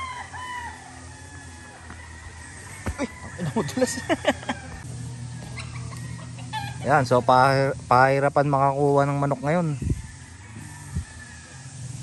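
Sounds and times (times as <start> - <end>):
chickens clucking: 1.9 - 7.5.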